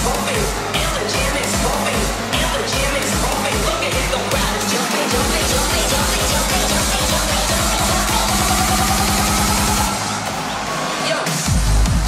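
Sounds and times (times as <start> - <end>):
heavy kick drum: 0.0 - 10.4, 11.3 - 12.0
loud hardstyle dance music: 0.0 - 12.0
rapid drum roll: 1.4 - 12.0.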